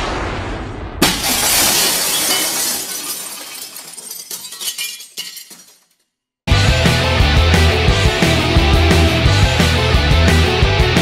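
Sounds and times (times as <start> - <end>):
glass shattering: 1.0 - 6.0
glass pieces tinkling: 1.2 - 6.0.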